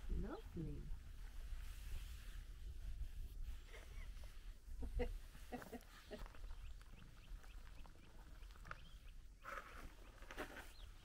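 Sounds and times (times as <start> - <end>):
small bird chirping: 5.6 - 11.0.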